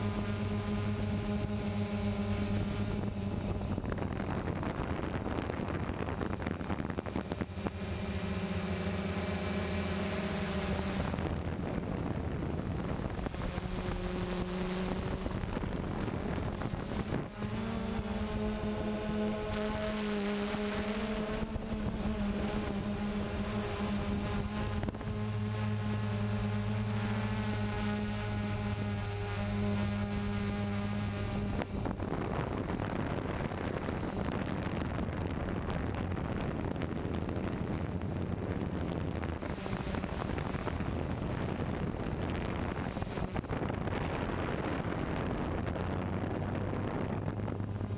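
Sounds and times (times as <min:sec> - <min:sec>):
drone propellers whirring: 0:00.0 - 0:47.9.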